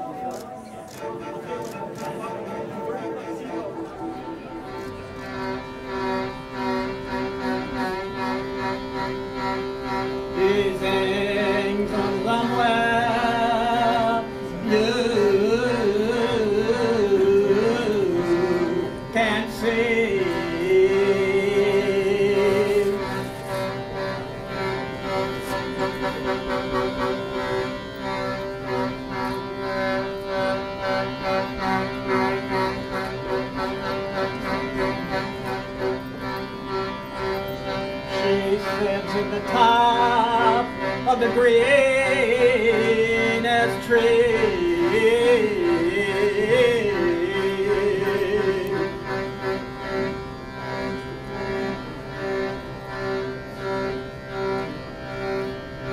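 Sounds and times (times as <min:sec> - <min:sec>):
bellows instrument drone: 0:00.0 - 0:55.9.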